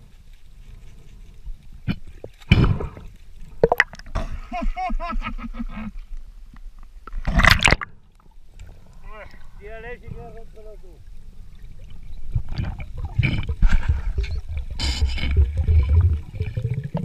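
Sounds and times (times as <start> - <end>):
person laughing: 4.4 - 5.9.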